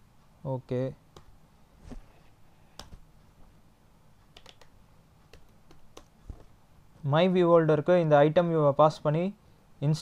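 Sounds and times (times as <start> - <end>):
computer keyboard keystrokes: 4.3 - 6.5.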